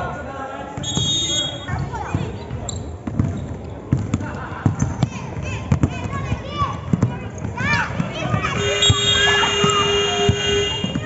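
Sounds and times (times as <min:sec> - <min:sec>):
voices: 0:00.0 - 0:11.0
basketball bouncing on hard court: 0:01.7 - 0:11.0.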